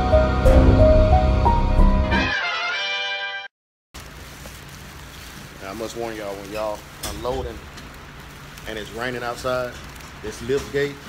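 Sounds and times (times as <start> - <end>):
rain hiss: 4.0 - 11.0.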